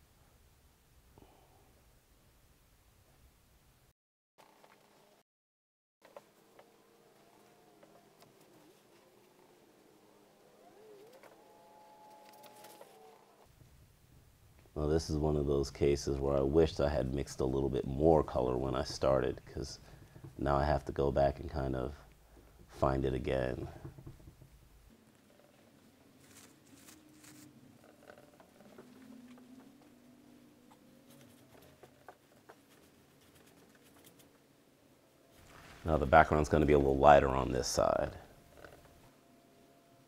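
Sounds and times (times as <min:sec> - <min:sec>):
faint steady hum: 0:06.1 - 0:40.0
brush mixing paint on palette: 0:26.2 - 0:34.5.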